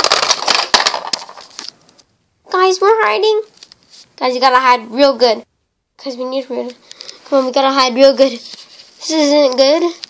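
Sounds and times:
plastic toys clattering: 0:00.0 - 0:01.7.

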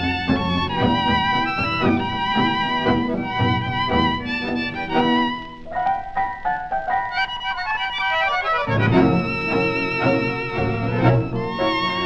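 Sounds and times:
tango orchestra playing: 0:00.0 - 0:12.0.

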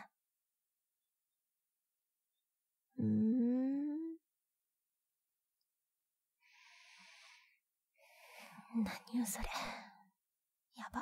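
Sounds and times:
faint breathy whisper: 0:06.7 - 0:10.1.

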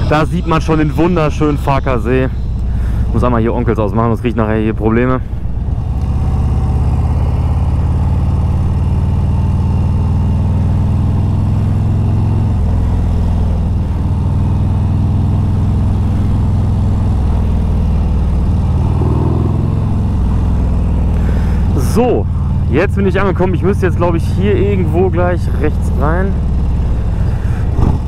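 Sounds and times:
motorcycle engine running: 0:00.0 - 0:28.0
wind and road noise: 0:00.0 - 0:28.0.

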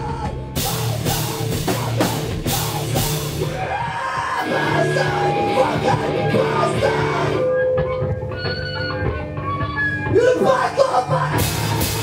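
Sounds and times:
hardcore band playing live: 0:00.0 - 0:12.0
screamed vocal: 0:03.4 - 0:07.4.

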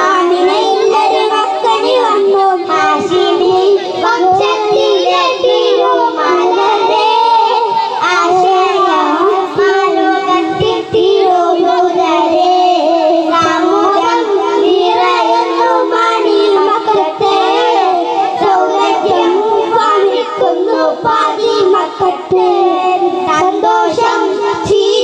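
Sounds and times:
boys singing into microphones: 0:00.0 - 0:25.0.

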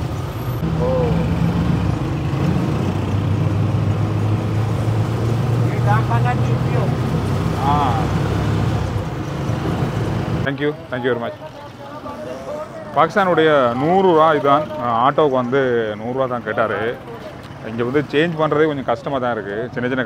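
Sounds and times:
auto-rickshaw engine running: 0:00.0 - 0:20.0.

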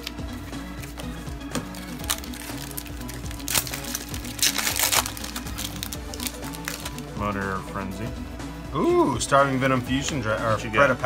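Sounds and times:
background music: 0:00.0 - 0:11.0
foil pack tearing and crinkling: 0:01.6 - 0:07.0.

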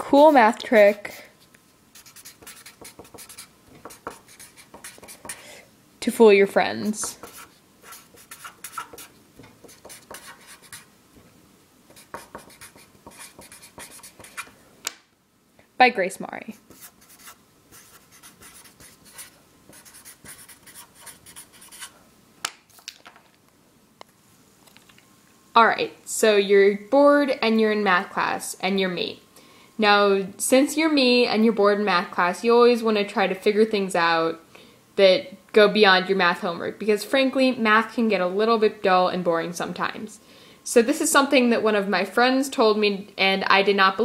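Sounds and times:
marker writing on paper: 0:00.0 - 0:01.3, 0:02.0 - 0:05.4, 0:07.0 - 0:10.9, 0:11.9 - 0:14.5, 0:16.6 - 0:21.9.

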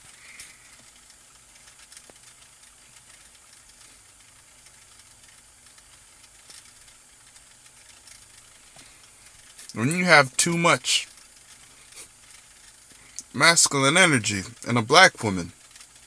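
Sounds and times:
faint background hiss: 0:00.0 - 0:16.0
speech: 0:09.7 - 0:11.1, 0:13.3 - 0:15.5.

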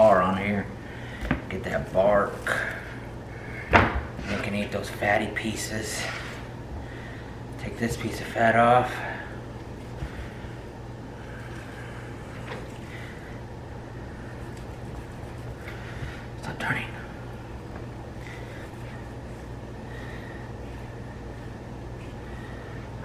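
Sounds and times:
steady low hum: 0:00.0 - 0:23.0.

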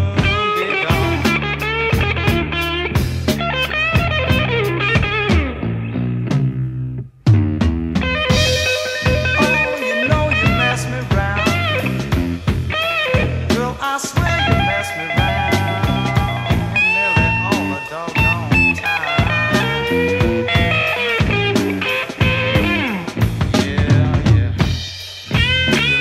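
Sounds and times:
electric guitar lead: 0:00.0 - 0:23.8, 0:25.3 - 0:26.0
bass guitar: 0:00.0 - 0:26.0
drums: 0:00.0 - 0:26.0.

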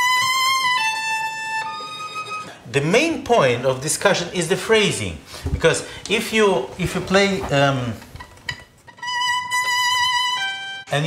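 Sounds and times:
violin high bowed note: 0:00.0 - 0:02.6, 0:08.5 - 0:11.0.

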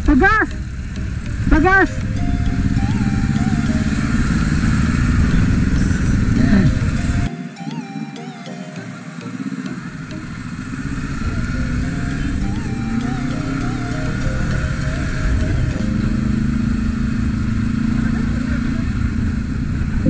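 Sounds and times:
motorcycle engine accelerating: 0:09.9 - 0:20.0.

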